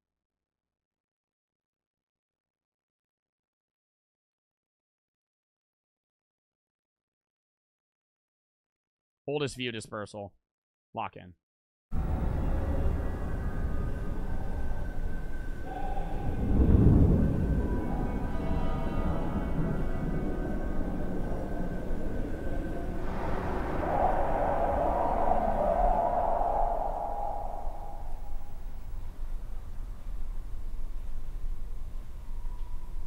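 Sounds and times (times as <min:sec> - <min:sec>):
dark ambient drone: 0:11.9 - 0:33.0
wavering mid-pitched tone: 0:12.0 - 0:29.2.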